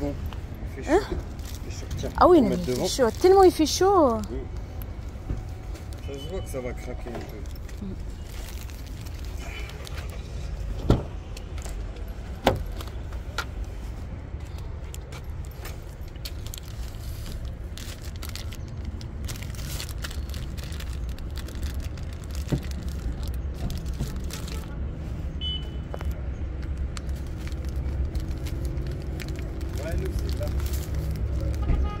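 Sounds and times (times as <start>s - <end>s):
plastic wrapper rustling: 1.2s - 10.2s, 14.5s - 24.7s, 26.6s - 31.6s.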